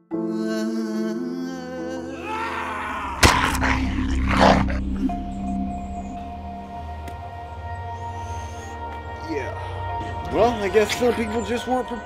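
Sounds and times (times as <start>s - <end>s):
ominous music drone: 1.3s - 12.0s
snarling growl: 2.8s - 5.2s.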